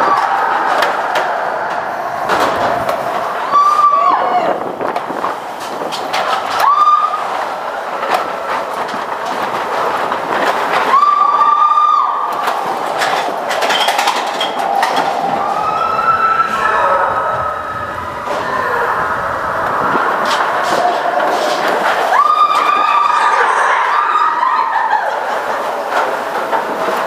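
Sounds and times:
roller coaster rattling rumble: 0.0s - 27.0s.

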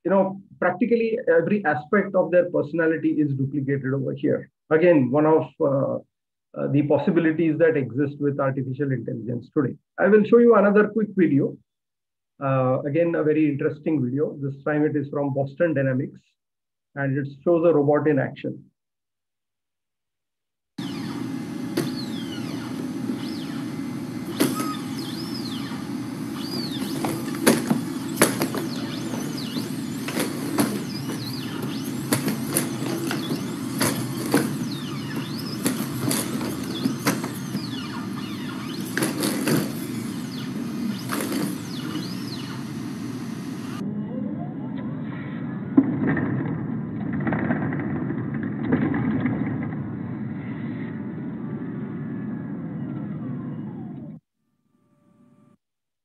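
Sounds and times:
squeaks: 20.8s - 42.9s
hydraulic pump whirring: 20.8s - 43.8s.

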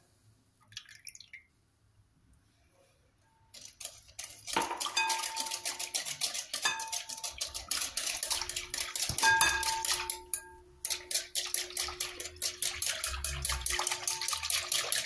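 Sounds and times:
liquid sloshing: 3.5s - 15.0s
whisk clicking against glass bowl: 3.5s - 15.0s.

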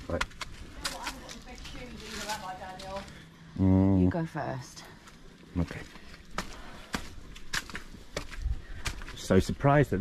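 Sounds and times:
footsteps on stone steps: 0.0s - 3.2s, 5.0s - 9.9s.

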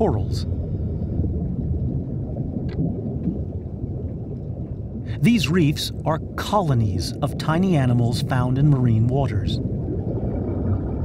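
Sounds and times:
steady low rumbling: 0.0s - 11.0s.

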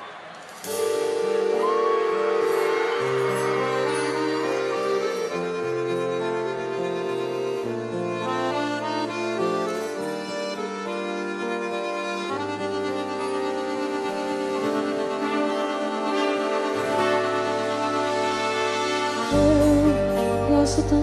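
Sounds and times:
accordion playing held chords: 0.8s - 21.0s
bass line: 19.3s - 21.0s.

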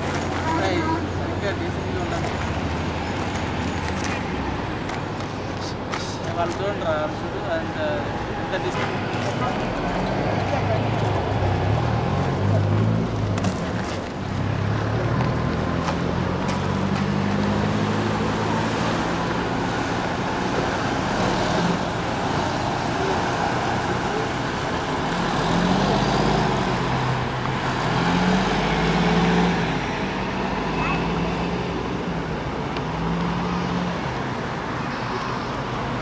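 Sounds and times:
coach bus driving by: 0.0s - 34.8s
passing vehicles: 0.0s - 36.0s
low voices talking: 18.4s - 27.1s.

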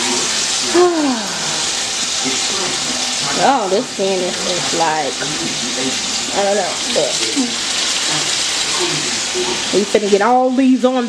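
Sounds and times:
meat sizzling in oil: 0.0s - 11.0s.

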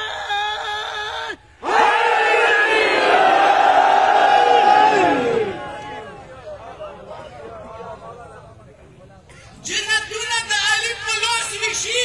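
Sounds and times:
crowd shouting in unison: 1.6s - 6.2s.

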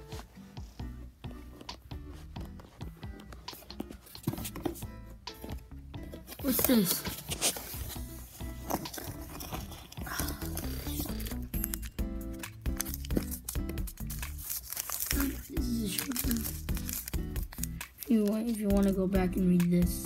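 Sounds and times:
background music: 0.0s - 20.0s
paper packaging crinkling: 6.1s - 19.1s.

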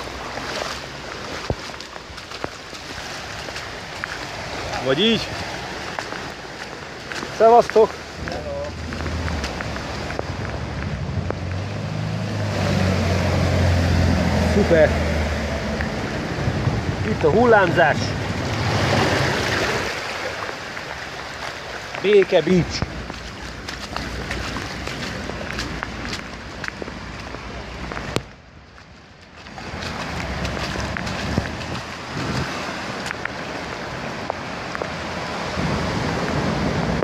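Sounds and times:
heavy rain: 0.0s - 37.0s
running floodwater: 0.0s - 37.0s.

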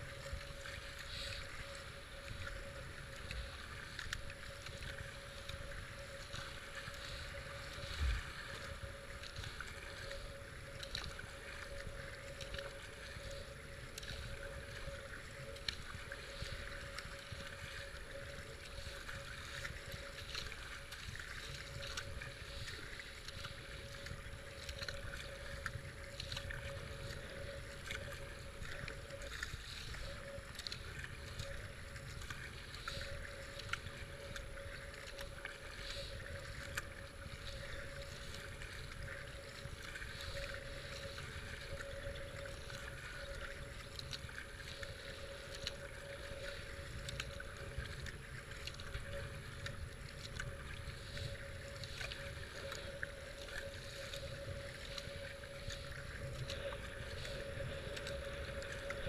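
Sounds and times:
faint steady hum: 0.0s - 59.0s
kayak paddling: 0.0s - 59.0s
wind rumble on microphone: 0.0s - 59.0s.

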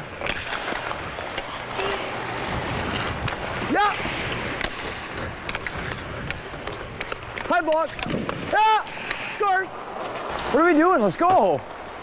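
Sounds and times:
skate blades scraping ice: 0.0s - 12.0s
hockey stick and puck clicks: 0.1s - 10.6s.

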